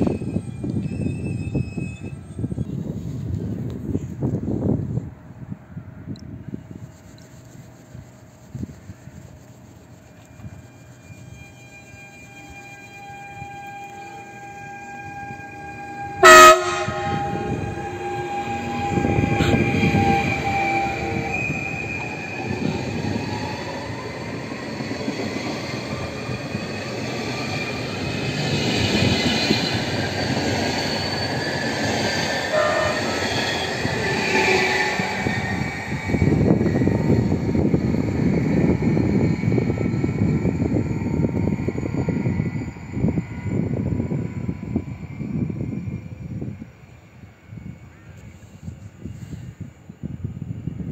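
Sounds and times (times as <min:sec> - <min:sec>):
electric train drive whining: 0:00.0 - 0:06.5, 0:07.4 - 0:49.1
train rumbling on rails: 0:00.0 - 0:50.9
train horn blast: 0:11.3 - 0:21.3, 0:32.4 - 0:35.5.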